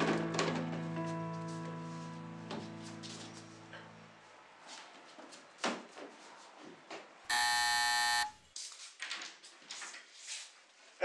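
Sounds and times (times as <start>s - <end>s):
doorbell buzzer: 7.3s - 8.4s.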